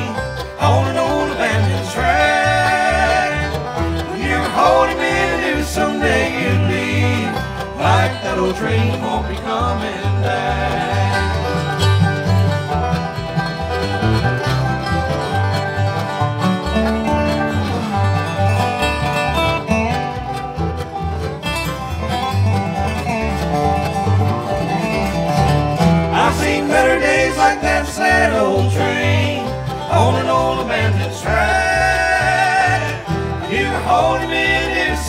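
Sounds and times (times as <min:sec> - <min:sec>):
bluegrass band playing: 0:00.0 - 0:35.0
resonator guitar sliding notes: 0:00.0 - 0:35.0.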